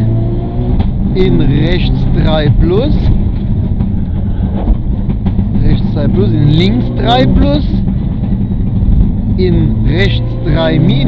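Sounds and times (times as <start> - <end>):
car engine rumbling under load: 0.0 - 11.0
road noise: 0.0 - 11.0.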